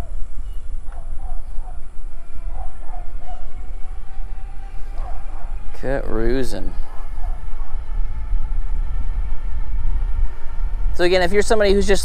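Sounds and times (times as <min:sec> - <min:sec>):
faint steady whine: 0:00.0 - 0:12.0
wind buffeting microphone: 0:00.0 - 0:12.0.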